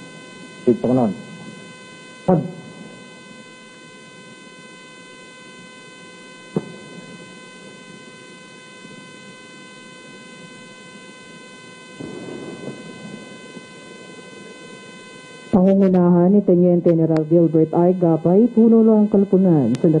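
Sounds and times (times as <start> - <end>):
faint electrical hum: 0.0 - 20.0.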